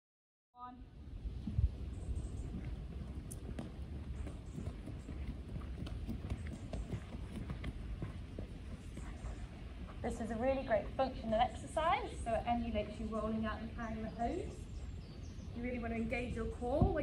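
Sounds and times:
wind rumbling on microphone: 0:00.6 - 0:17.0.

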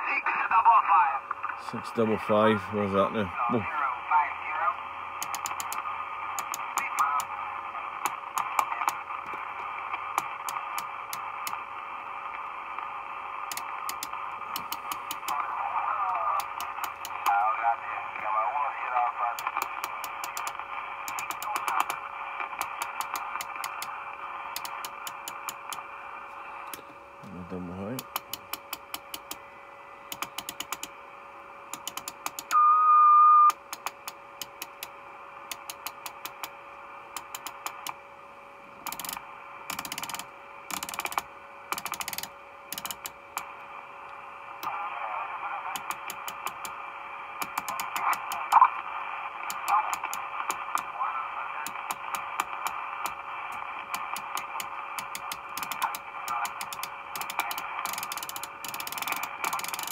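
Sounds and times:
steady radio tone: 0:00.0 - 0:28.1, 0:44.5 - 0:59.9
radio band hiss: 0:00.0 - 0:30.9, 0:38.6 - 0:59.9
rotary channel selector clicking: 0:05.2 - 0:05.8, 0:06.4 - 0:07.3, 0:10.1 - 0:11.6, 0:13.5 - 0:15.4, 0:16.4 - 0:17.4, 0:19.4 - 0:22.0, 0:22.6 - 0:23.9, 0:24.6 - 0:25.8, 0:28.0 - 0:29.4, 0:30.1 - 0:31.0, 0:31.7 - 0:32.5, 0:33.5 - 0:38.0, 0:38.8 - 0:43.6, 0:45.7 - 0:46.8, 0:47.4 - 0:48.5, 0:49.5 - 0:50.9, 0:53.9 - 0:59.9.

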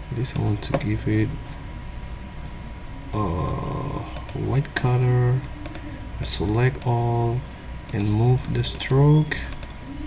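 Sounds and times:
low background hum: 0:00.0 - 0:10.0
man's drawn-out hesitant vowel: 0:03.0 - 0:04.2.

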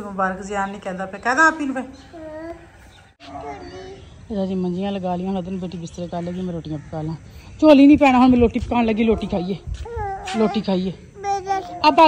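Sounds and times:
small child vocalizing: 0:03.3 - 0:04.1, 0:09.8 - 0:10.6, 0:11.2 - 0:12.0.

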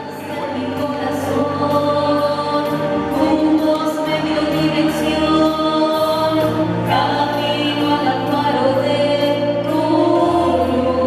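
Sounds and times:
women singing a hymn: 0:00.0 - 0:11.0.

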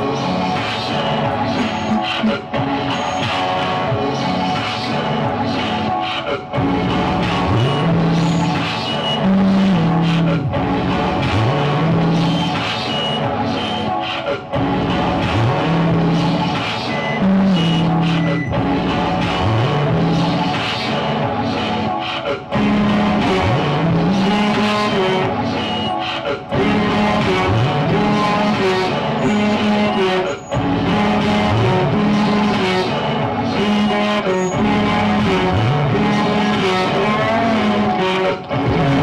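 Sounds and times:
experimental electronic noise music: 0:00.0 - 0:39.0
high whistling tone: 0:01.6 - 0:03.4, 0:12.2 - 0:14.0, 0:16.9 - 0:18.6, 0:25.6 - 0:26.0, 0:29.2 - 0:30.6.

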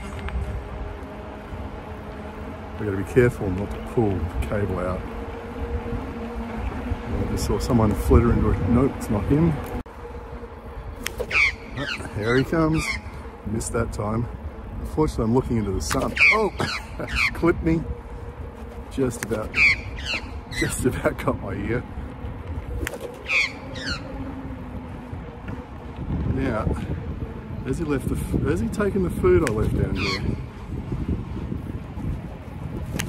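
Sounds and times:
wind noise on microphone: 0:00.0 - 0:33.0
magpie harsh calls: 0:11.2 - 0:13.0, 0:16.2 - 0:17.4, 0:19.5 - 0:20.8, 0:23.2 - 0:24.1, 0:30.0 - 0:30.4.

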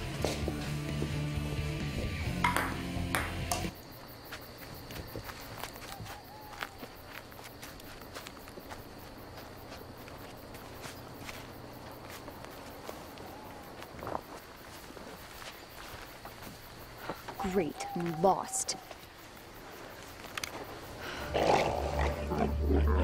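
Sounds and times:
party music: 0:00.5 - 0:03.7
ping-pong ball clicking: 0:02.4 - 0:03.6
faint scattered clicks: 0:20.0 - 0:20.8.

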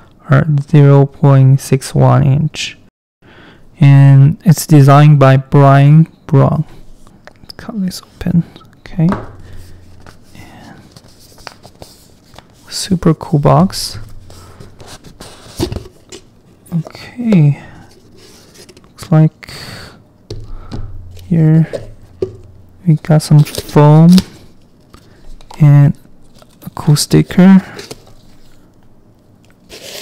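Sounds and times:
handling cardboard tube box: 0:09.1 - 0:19.1
cardboard rubbing and scraping: 0:13.9 - 0:16.2.

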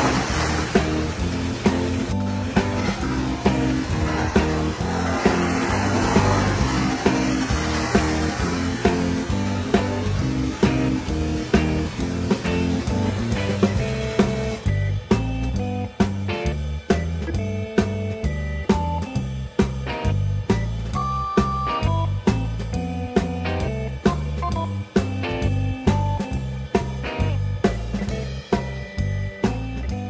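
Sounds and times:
music with steady beat: 0:00.0 - 0:30.0
repeating bass line: 0:00.0 - 0:30.0.

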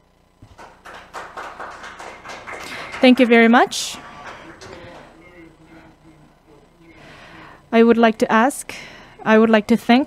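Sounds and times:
people clapping: 0:00.4 - 0:05.9.

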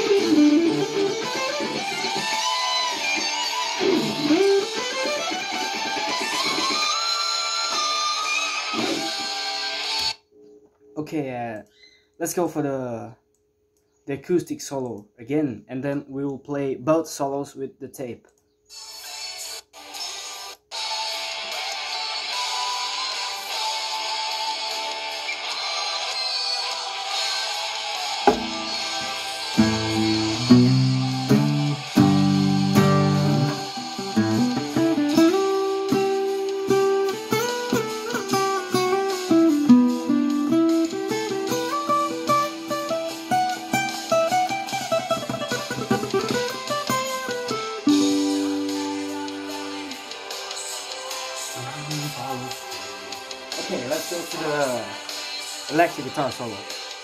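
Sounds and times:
recorded backing track: 0:00.0 - 0:13.2, 0:19.6 - 0:57.0
acoustic guitar solo: 0:28.3 - 0:49.8.

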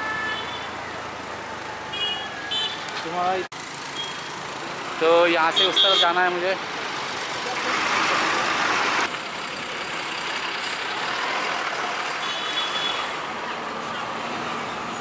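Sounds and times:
street traffic: 0:00.0 - 0:15.0.

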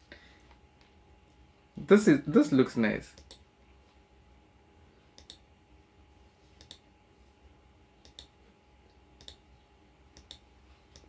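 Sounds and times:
computer mouse clicking: 0:03.2 - 0:03.4, 0:05.2 - 0:05.4, 0:06.6 - 0:06.8, 0:08.0 - 0:08.3, 0:09.2 - 0:09.4, 0:10.2 - 0:11.0.

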